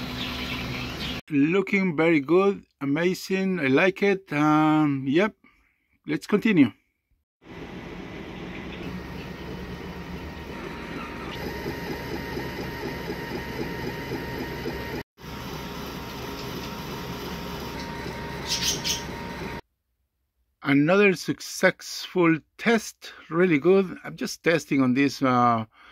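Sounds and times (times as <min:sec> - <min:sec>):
laser engraver motor whirring: 0:07.5 - 0:19.6.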